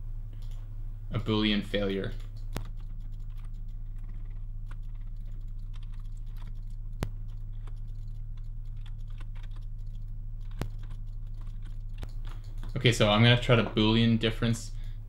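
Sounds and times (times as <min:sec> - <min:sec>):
low electrical hum: 0:00.0 - 0:15.0
keyboard and mouse clicks: 0:02.1 - 0:12.9.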